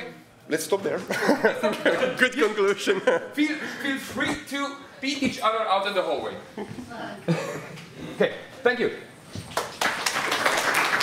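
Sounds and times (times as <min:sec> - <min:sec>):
audience applause: 0:09.5 - 0:11.0.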